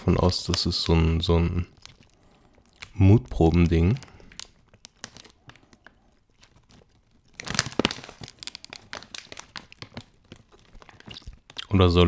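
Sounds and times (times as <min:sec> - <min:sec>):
plastic chip bag crinkling: 0:00.0 - 0:12.0.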